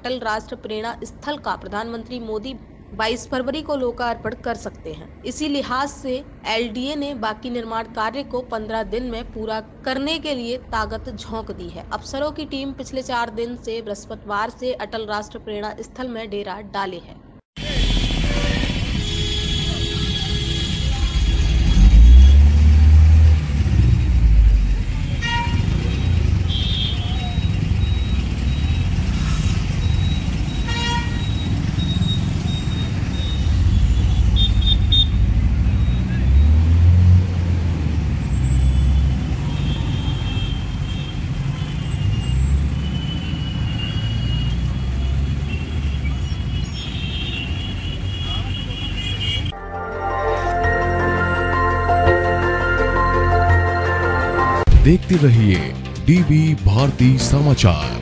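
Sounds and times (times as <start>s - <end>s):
road traffic rumble: 0.0s - 14.8s, 17.1s - 49.6s
vehicle horn toots: 17.6s - 22.5s, 25.0s - 27.6s, 30.6s - 31.5s, 32.8s - 35.3s, 38.6s - 44.6s, 45.5s - 49.6s.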